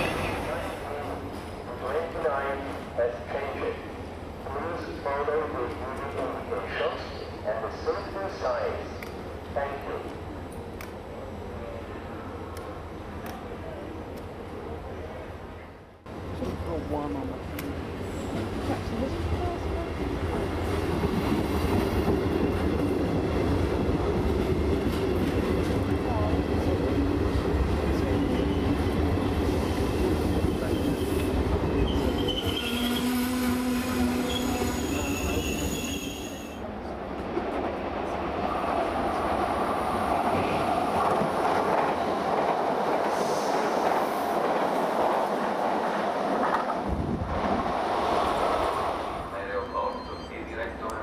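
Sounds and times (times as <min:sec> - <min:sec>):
train passing with rumble and hum: 0:00.0 - 0:51.0
train wheel squeal: 0:30.3 - 0:36.6, 0:49.4 - 0:50.6.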